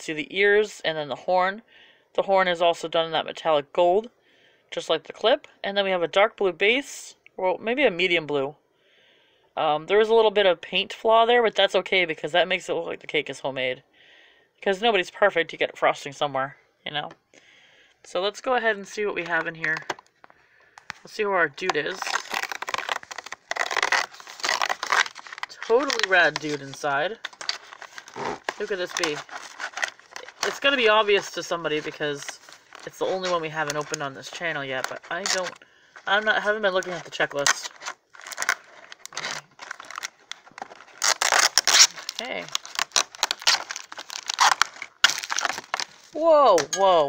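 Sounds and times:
plastic packaging crinkling: 0:19.2 - 0:47.0
cardboard tearing: 0:21.6 - 0:47.0.

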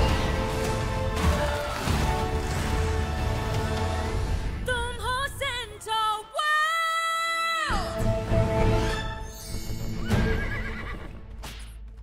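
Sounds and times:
background music: 0:00.0 - 0:12.0
horse whinny: 0:10.0 - 0:11.2.

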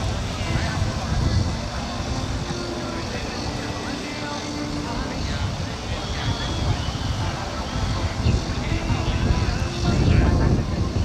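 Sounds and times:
model jet engine running: 0:00.0 - 0:11.0
people talking: 0:00.0 - 0:11.0
wind rumbling on microphone: 0:00.0 - 0:11.0.

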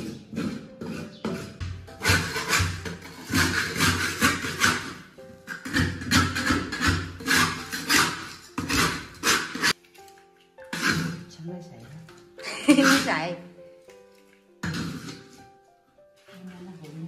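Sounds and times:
metal spatula scraping wok: 0:00.0 - 0:09.8, 0:10.6 - 0:11.3, 0:14.6 - 0:15.5
background music with held notes: 0:00.0 - 0:17.0.

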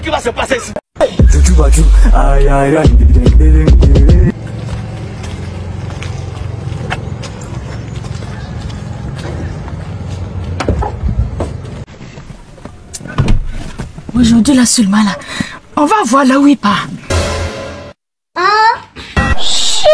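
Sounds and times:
loud music with heavy bass: 0:01.0 - 0:04.4.

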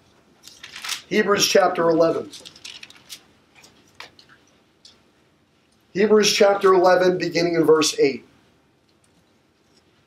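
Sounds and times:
thin pages turning: 0:00.4 - 0:01.1, 0:02.2 - 0:04.3.

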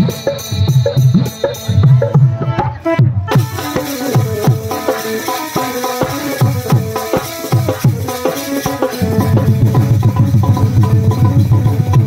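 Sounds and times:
fast hand-drum rhythm: 0:00.0 - 0:12.0
harmonium melody: 0:01.4 - 0:12.0.

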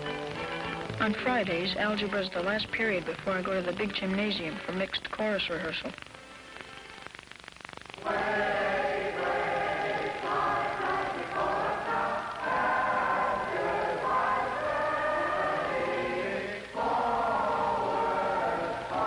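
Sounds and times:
children's choir singing in harmony: 0:08.0 - 0:19.0.

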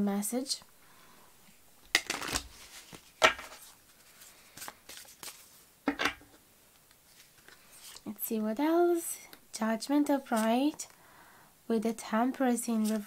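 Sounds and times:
cards snapping and sliding: 0:01.9 - 0:03.7
faint paper rustles: 0:02.1 - 0:05.7, 0:07.0 - 0:08.1, 0:12.7 - 0:13.0.

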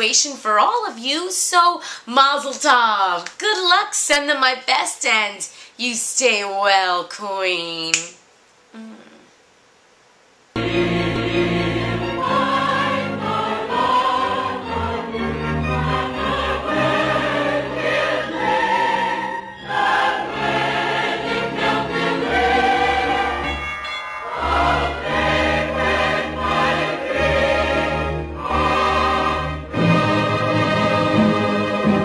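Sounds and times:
choir singing: 0:10.6 - 0:32.0
orchestra playing: 0:10.6 - 0:32.0.

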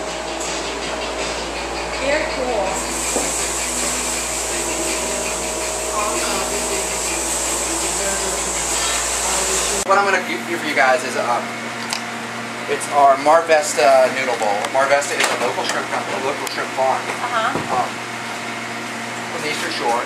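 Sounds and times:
air-handling machinery hum and hiss: 0:00.0 - 0:20.0.

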